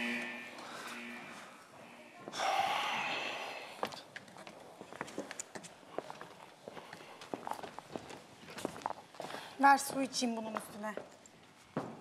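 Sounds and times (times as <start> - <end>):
footsteps on hard floor: 11.7 - 12.0.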